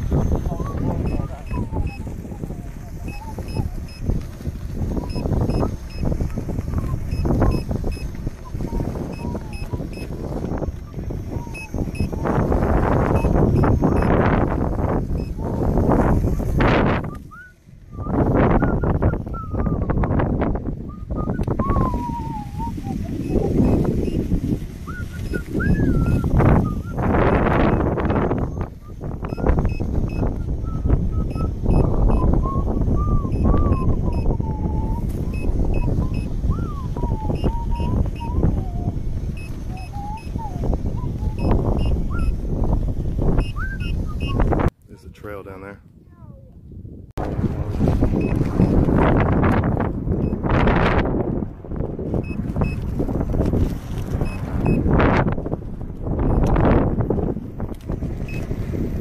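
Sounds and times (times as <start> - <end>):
thin wavering whistle tone: 0.0 - 4.1, 6.7 - 15.8, 16.9 - 20.2, 20.8 - 42.6, 43.4 - 44.6
wind buffeting microphone: 0.0 - 59.0.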